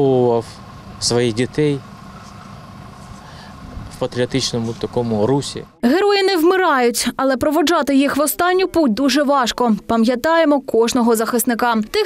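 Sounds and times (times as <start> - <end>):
low outdoor background rumble: 0.0 - 12.0.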